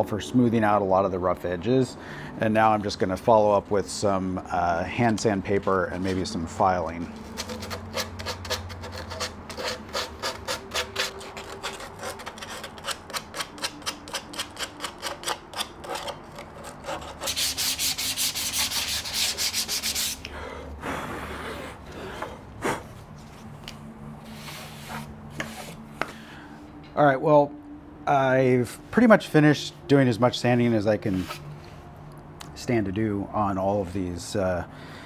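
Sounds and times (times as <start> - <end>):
hand sanding wood: 7.2 - 16.0, 16.6 - 20.3.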